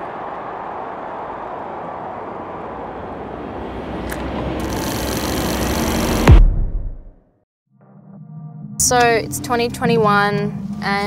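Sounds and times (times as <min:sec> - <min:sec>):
rushing riser noise: 0:00.0 - 0:07.2.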